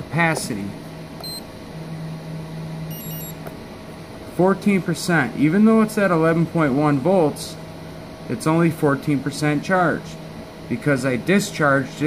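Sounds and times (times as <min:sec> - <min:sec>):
steady low hum: 0:00.0 - 0:12.0
battery charger beep: 0:01.2 - 0:01.5, 0:02.9 - 0:03.4.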